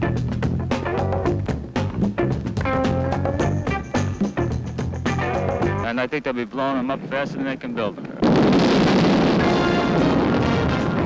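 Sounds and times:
music: 0:00.0 - 0:06.1, 0:09.2 - 0:11.0
loud explosion blast: 0:08.2 - 0:11.0.

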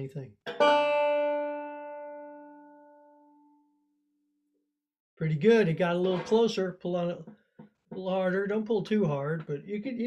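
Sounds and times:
banjo string ringing: 0:00.4 - 0:03.6.

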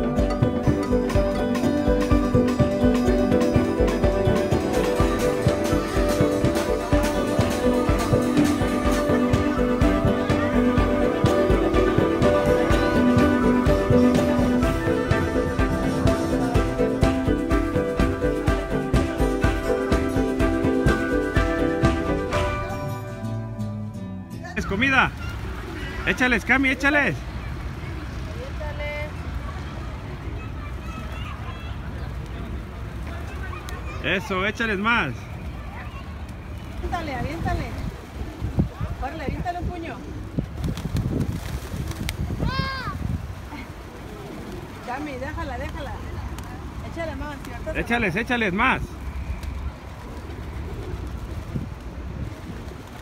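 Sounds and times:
low rumble of traffic: 0:00.0 - 0:53.0
faint pigeons milling about: 0:24.6 - 0:53.0
wind rumbling on microphone: 0:37.1 - 0:44.9, 0:50.9 - 0:53.0.

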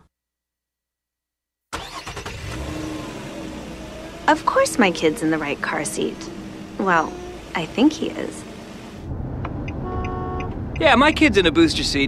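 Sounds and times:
car engine running: 0:02.2 - 0:12.0.

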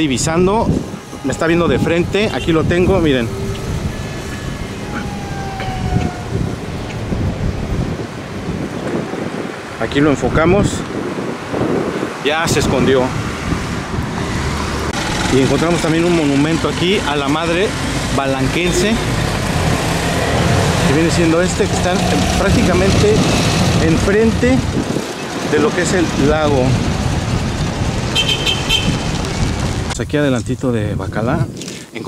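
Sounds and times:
wind buffeting microphone: 0:00.0 - 0:32.0
thin tone sliding downward: 0:01.1 - 0:06.8
vehicle engine running: 0:14.6 - 0:29.9.

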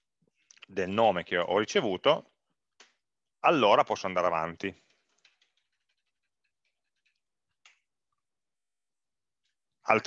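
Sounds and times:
computer keyboard clicks: 0:04.9 - 0:07.9.

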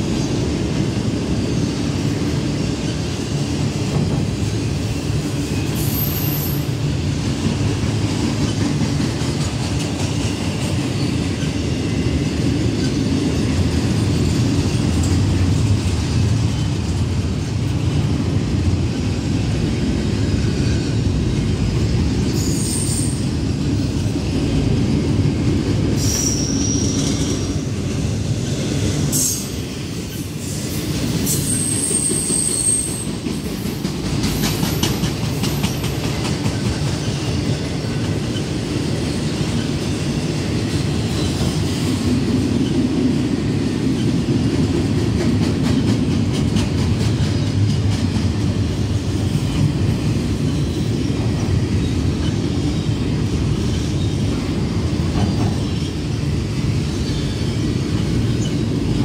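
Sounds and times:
freight train wheels rumbling on rail: 0:00.0 - 0:59.0
high-pitched wheel squeals: 0:26.0 - 0:27.5.

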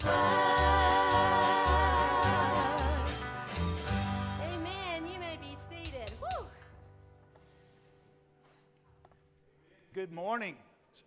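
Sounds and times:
person singing: 0:00.0 - 0:03.3
acoustic guitars and band: 0:00.0 - 0:08.8.

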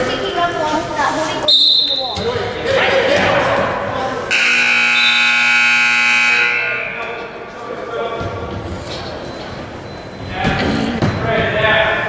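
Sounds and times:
crowd voices: 0:00.0 - 0:12.0
scoreboard buzzer long blast: 0:04.3 - 0:07.0.

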